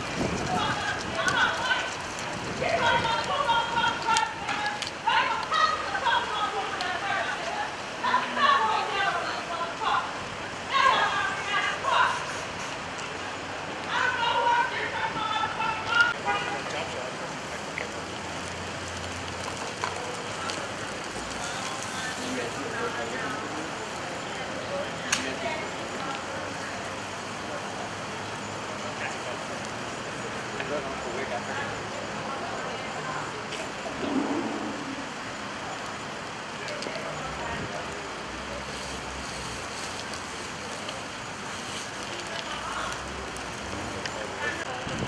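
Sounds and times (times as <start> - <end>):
distant indistinct voices: 0.0 - 45.0
steady background hiss: 0.0 - 45.0
traffic hum: 0.0 - 45.0.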